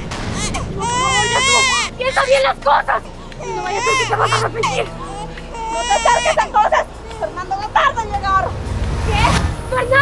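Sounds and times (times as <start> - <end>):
baby crying: 0.3 - 7.6.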